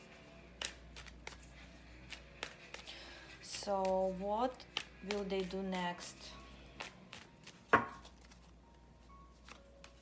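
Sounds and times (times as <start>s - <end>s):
cards shuffled by hand: 0.0s - 5.6s, 6.8s - 8.6s, 9.3s - 10.0s.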